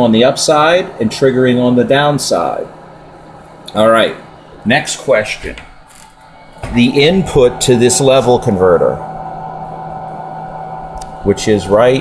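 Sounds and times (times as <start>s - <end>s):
electronic equipment hum: 0.0s - 12.0s.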